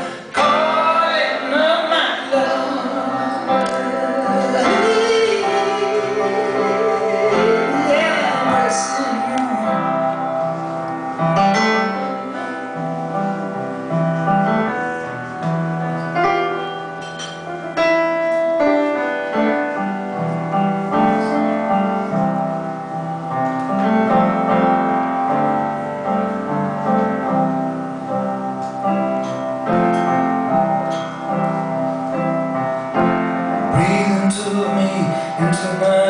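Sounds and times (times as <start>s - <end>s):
solo piano playing chords: 0.0s - 36.0s.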